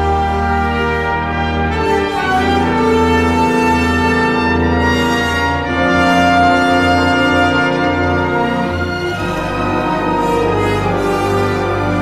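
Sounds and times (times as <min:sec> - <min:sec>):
bowed strings: 0:00.0 - 0:12.0
brass chords: 0:00.0 - 0:12.0.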